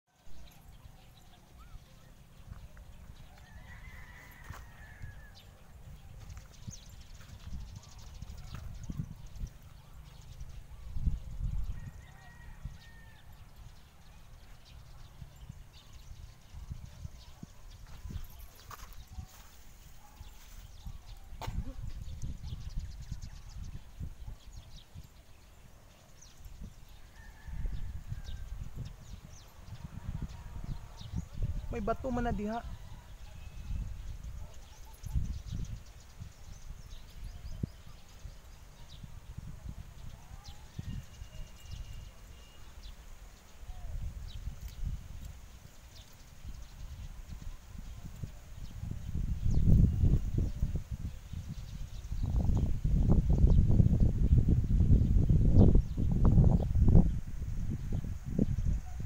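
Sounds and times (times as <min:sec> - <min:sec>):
wind buffeting microphone: 0:00.5 - 0:59.0.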